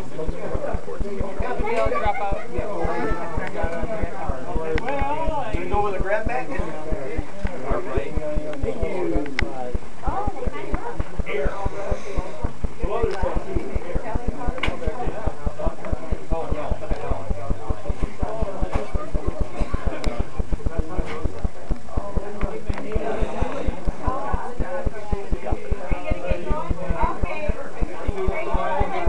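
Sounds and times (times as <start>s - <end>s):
people talking: 0.0s - 29.0s
short low thumps: 0.0s - 29.0s
voices: 0.0s - 29.0s.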